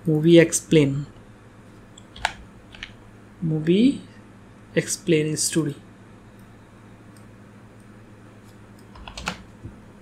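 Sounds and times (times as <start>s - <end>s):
computer keyboard keystrokes: 2.0s - 3.0s, 8.8s - 9.5s.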